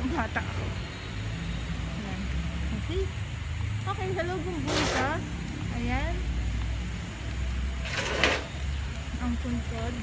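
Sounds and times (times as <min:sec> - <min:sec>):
engine hum: 0:00.0 - 0:10.0
road traffic rumble: 0:00.0 - 0:10.0.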